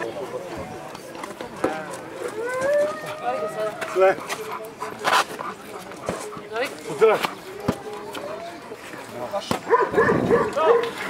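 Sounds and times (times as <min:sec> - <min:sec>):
people's voices: 0:00.0 - 0:11.0
dog barking: 0:09.7 - 0:11.0.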